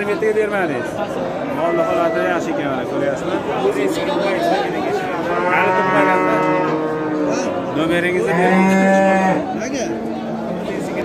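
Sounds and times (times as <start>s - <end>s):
cattle mooing: 5.0s - 11.0s.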